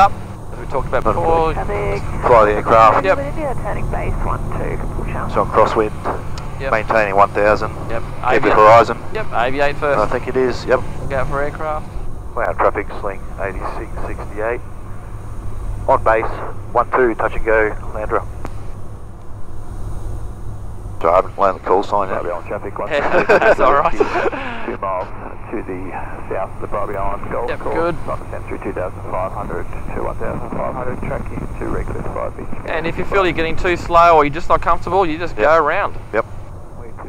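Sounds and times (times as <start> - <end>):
light aircraft engine drone: 0.0 - 37.0.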